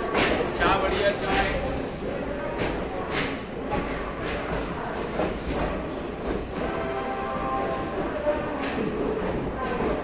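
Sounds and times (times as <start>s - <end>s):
train wheels rumbling: 0.0s - 10.0s.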